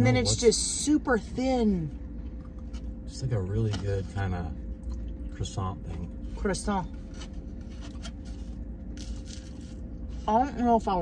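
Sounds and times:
car heater humming: 0:00.0 - 0:11.0
flaky pastry crunching and rustling: 0:06.9 - 0:10.3.

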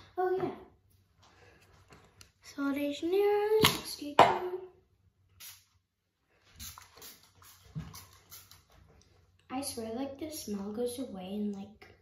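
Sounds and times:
perfume spray hisses: 0:05.4 - 0:05.7.

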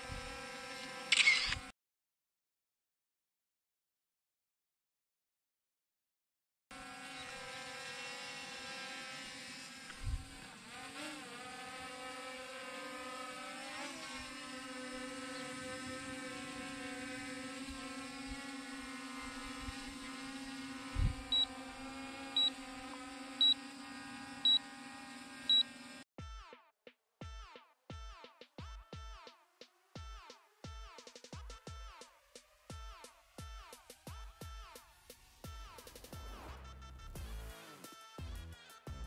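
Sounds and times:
drone propellers whining: 0:07.1 - 0:26.0
short high beeps: 0:25.5 - 0:25.7.

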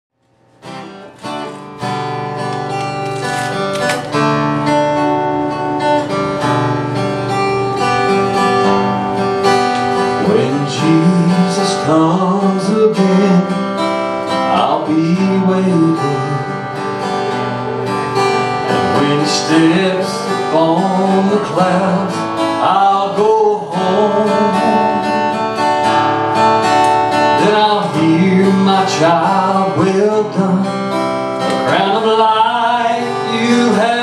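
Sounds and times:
acoustic guitar strumming: 0:00.2 - 0:34.0
man singing: 0:10.1 - 0:16.8, 0:18.7 - 0:25.4, 0:27.2 - 0:34.0.

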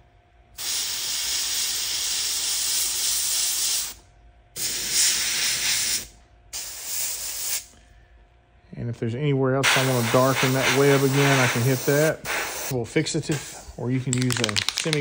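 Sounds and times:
airbrush spraying hiss: 0:00.6 - 0:04.0, 0:04.6 - 0:07.7, 0:09.6 - 0:13.8.

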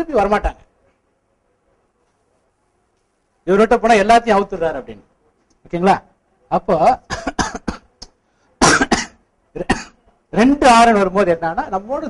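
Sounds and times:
cough: 0:07.1 - 0:08.0, 0:08.6 - 0:10.0
man talking: 0:10.3 - 0:12.0.

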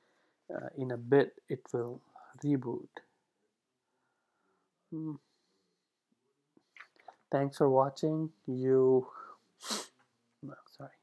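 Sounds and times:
man speaking: 0:00.5 - 0:03.0, 0:05.0 - 0:05.2, 0:07.3 - 0:09.4, 0:10.4 - 0:11.0
sharp breath: 0:09.2 - 0:10.0.

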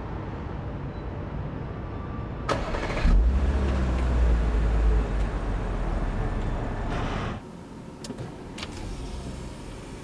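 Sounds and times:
car starter noise: 0:02.5 - 0:03.2.

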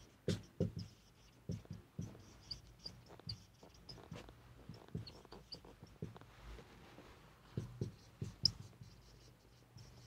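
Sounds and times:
marker tapping: 0:00.0 - 0:06.3, 0:07.5 - 0:10.0
marker scratching on whiteboard: 0:00.0 - 0:06.4, 0:07.5 - 0:10.0
marker squeak: 0:00.3 - 0:06.0.

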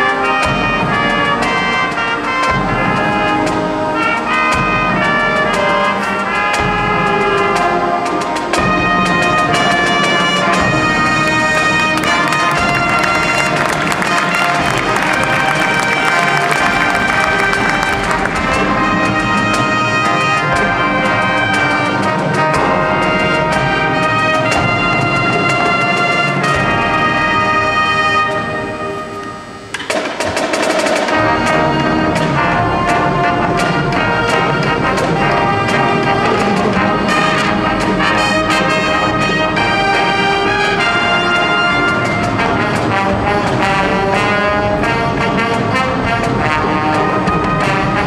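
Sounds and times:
brass and winds holding chords: 0:00.0 - 0:30.0, 0:30.9 - 0:48.0
drumline hits: 0:00.0 - 0:48.0.

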